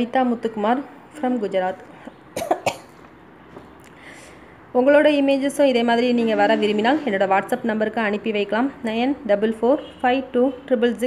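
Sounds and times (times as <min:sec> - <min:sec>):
person coughing: 0:02.4 - 0:03.0.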